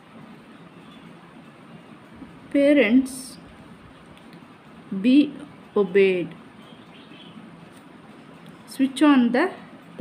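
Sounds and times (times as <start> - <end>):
faint steady background noise: 0.0 - 10.0.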